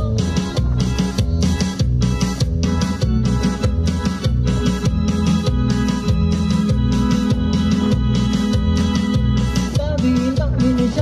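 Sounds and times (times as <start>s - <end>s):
electronic keyboard dance music: 0.0s - 11.0s.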